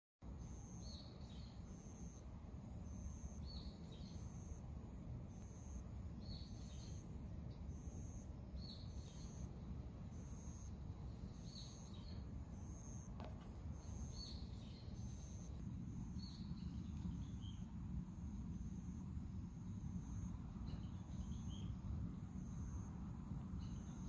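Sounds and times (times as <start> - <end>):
low outdoor rumble: 0.2 - 24.0
lower bird chirping call: 0.3 - 19.0, 19.6 - 24.0.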